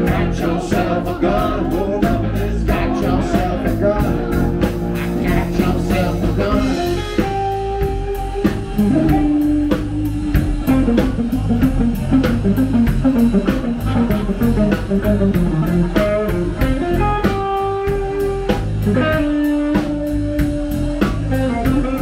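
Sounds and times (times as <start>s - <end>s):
drum kit beat: 0.0s - 22.0s
electric guitars: 0.0s - 22.0s.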